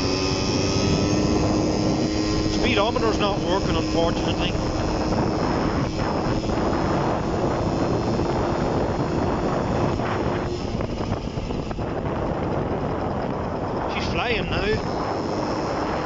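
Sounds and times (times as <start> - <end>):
scooter engine running: 0.0 - 16.0
wind over microphone: 0.0 - 16.0.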